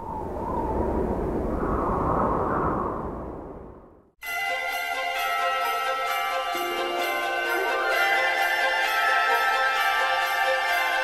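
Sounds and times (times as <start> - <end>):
deep rumble: 0.0 - 4.2.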